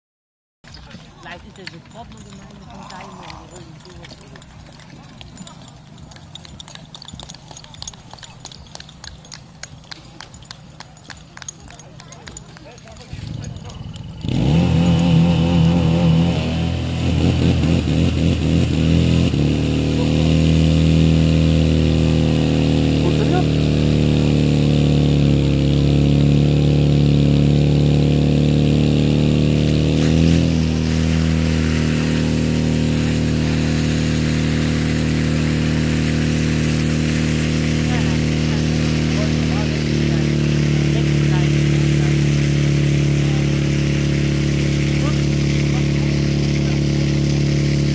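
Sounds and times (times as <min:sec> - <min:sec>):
pump engine running at high revs: 0:00.7 - 0:47.9.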